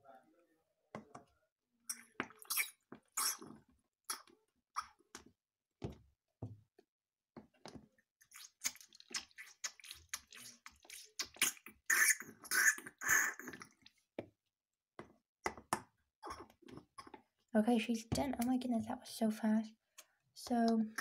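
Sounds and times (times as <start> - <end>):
wet squelching and dripping: 1.9 - 4.3, 8.2 - 14.1.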